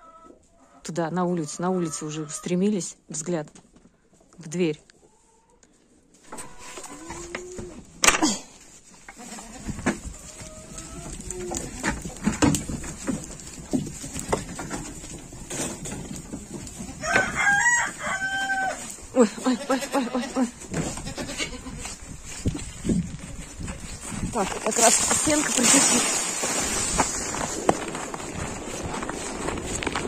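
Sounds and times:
goats bleating: 9.1 - 9.8, 17.6 - 22.0
goats knocking against boards: 9.7 - 17.6
rooster crowing: 17.0 - 18.8.

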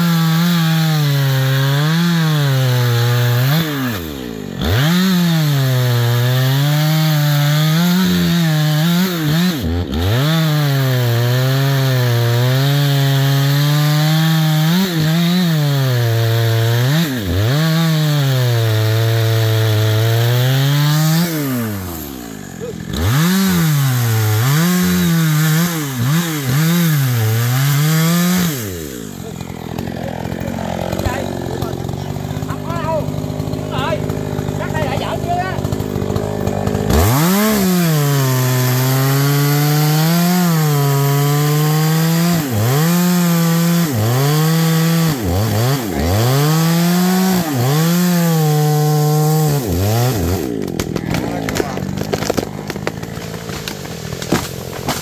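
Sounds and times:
chainsaw cutting into tree trunk: 0.0 - 55.0.

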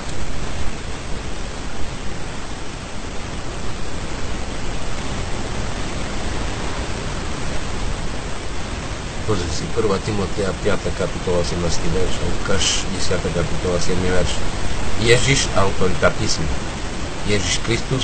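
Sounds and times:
steady background hiss: 0.0 - 18.0.

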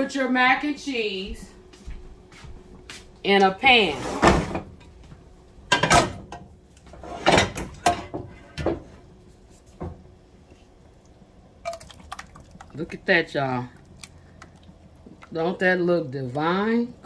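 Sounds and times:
pot and dish clattering on grates: 5.7 - 8.9.

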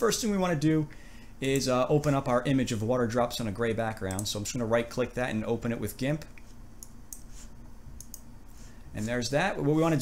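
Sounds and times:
low steady hum: 0.0 - 10.0
computer mouse clicks: 4.1 - 4.3, 6.4 - 7.3, 8.0 - 8.3.

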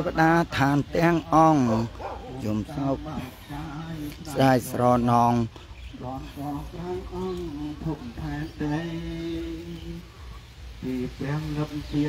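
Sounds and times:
chanting: 0.0 - 12.0.

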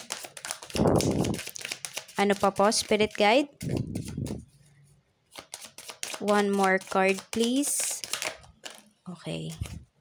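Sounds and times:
cards being shuffled: 0.0 - 4.5, 5.3 - 10.0.

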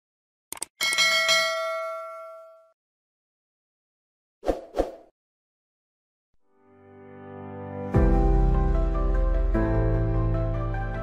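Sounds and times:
notification bell ding: 0.8 - 2.7.

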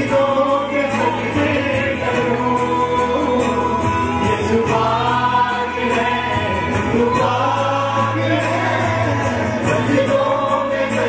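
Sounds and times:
man singing worship song: 0.0 - 11.0
voices singing along: 0.0 - 11.0.

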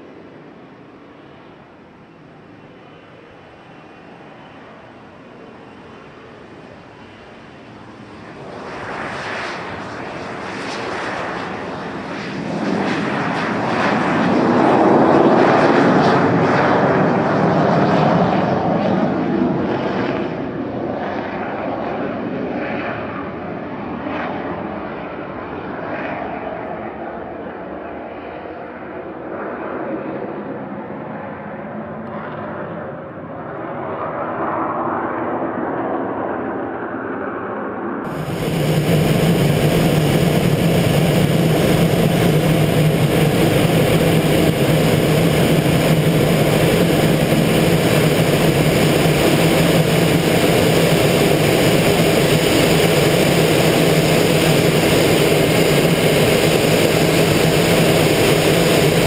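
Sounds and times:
jet engine roar with whine: 0.0 - 59.0.

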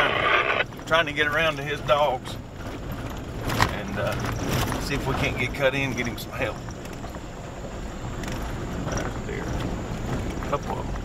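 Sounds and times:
truck engine and tyre road noise: 0.0 - 11.0.

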